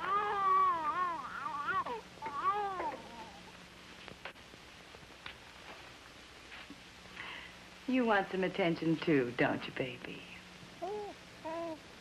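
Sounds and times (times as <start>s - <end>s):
baby crying: 0.0s - 3.4s, 10.8s - 11.8s.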